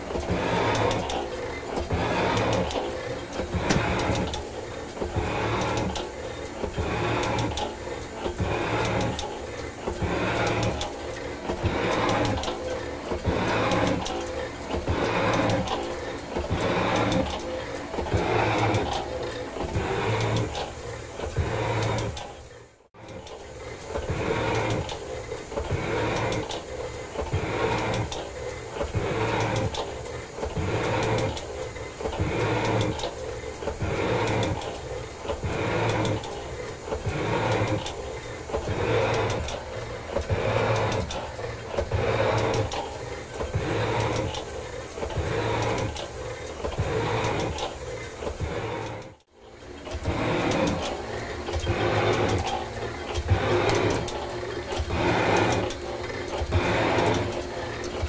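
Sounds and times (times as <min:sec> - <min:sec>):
metal shaper cutting iron: 0:49.9 - 0:51.0, 0:51.6 - 0:54.2, 0:54.8 - 0:58.0.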